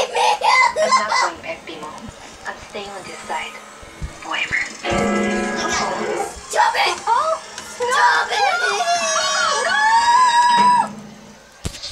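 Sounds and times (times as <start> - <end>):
cartoon music from television: 2.7 - 11.0.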